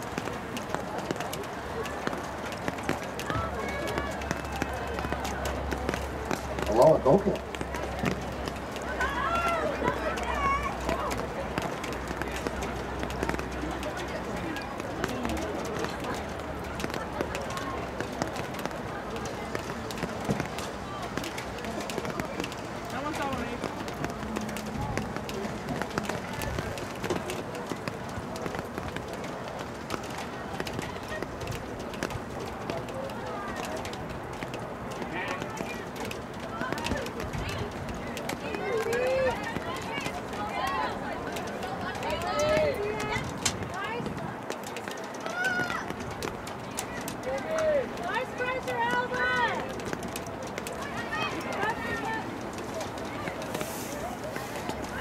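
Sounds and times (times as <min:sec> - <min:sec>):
steady background noise: 0:00.0 - 0:55.0
people shouting: 0:45.2 - 0:45.9.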